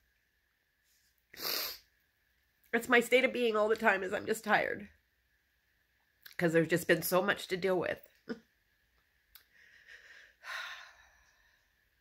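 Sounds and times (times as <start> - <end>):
woman sniffing: 1.3 - 1.9.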